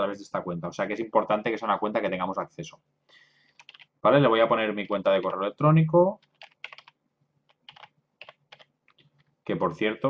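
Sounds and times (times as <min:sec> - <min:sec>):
computer keyboard typing: 0:03.6 - 0:03.9, 0:06.2 - 0:09.6.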